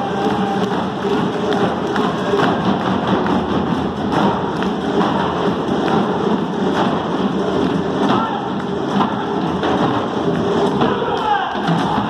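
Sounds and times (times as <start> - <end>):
hand drums rolling: 0.0 - 12.0.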